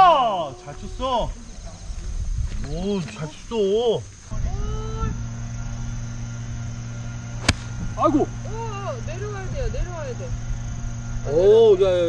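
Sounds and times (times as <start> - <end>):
steady low hum: 0.0 - 12.0
golf club striking ball: 7.4 - 8.1.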